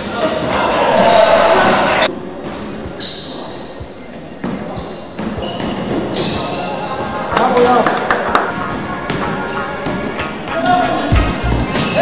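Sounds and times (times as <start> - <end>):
music with heavy bass: 9.5 - 12.0.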